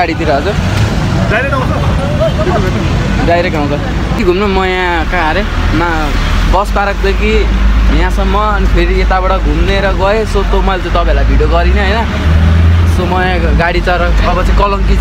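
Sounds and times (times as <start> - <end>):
young man talking: 0.0 - 12.2, 12.8 - 15.0
bus engine drone: 0.0 - 15.0
road traffic rumble: 0.0 - 15.0.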